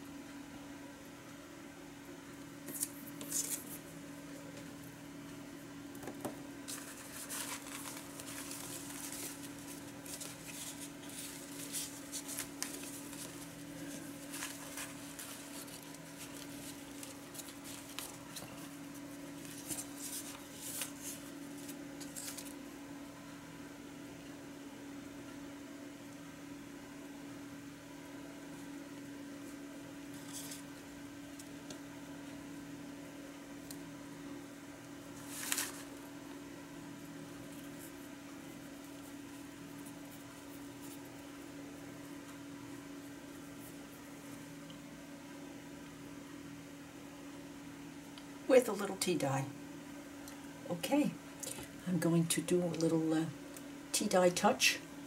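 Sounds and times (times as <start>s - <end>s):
steady low hum: 0.0s - 55.0s
paper rustling and crinkling: 2.7s - 3.8s, 6.6s - 22.6s, 30.1s - 30.8s, 35.1s - 36.1s.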